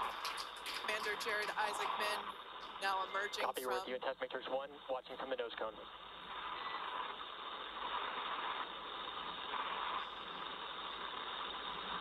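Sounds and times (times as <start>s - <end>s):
radio channel hiss: 0.0s - 12.0s.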